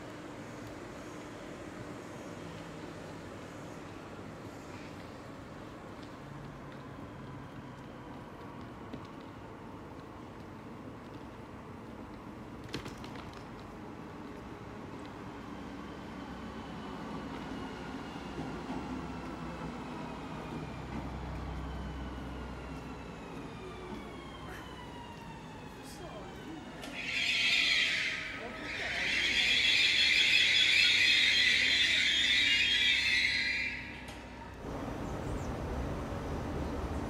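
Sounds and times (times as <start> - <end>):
train brake squeal: 26.8 - 34.5.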